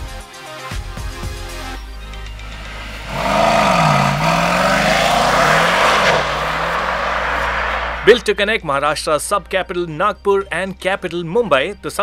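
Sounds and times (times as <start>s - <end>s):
car accelerating hard: 2.0s - 8.2s.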